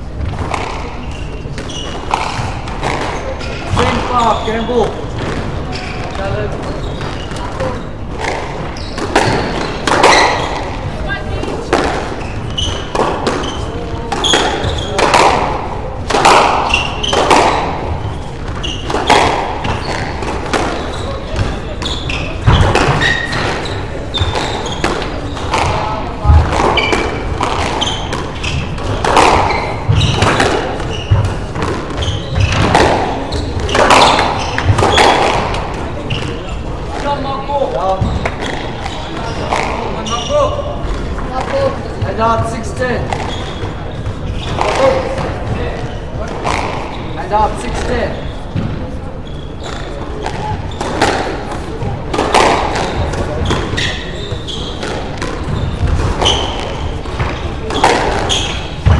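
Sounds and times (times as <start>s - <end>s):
squash ball hits echoing: 0.0s - 58.9s.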